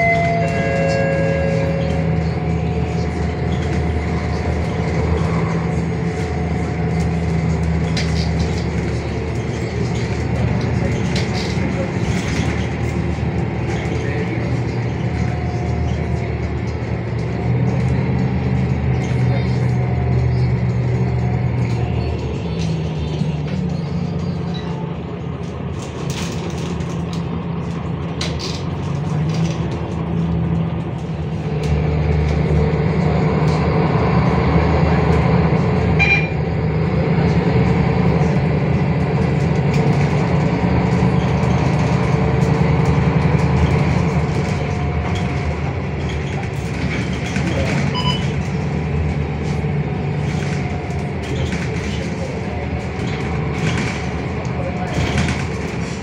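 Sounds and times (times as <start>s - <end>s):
bus diesel engine running: 0.0s - 56.0s
road and body noise: 0.0s - 56.0s.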